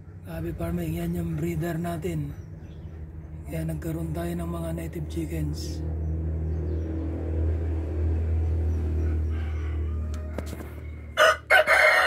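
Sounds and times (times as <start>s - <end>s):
steady low hum: 0.0s - 9.9s
rooster crowing: 8.8s - 12.0s.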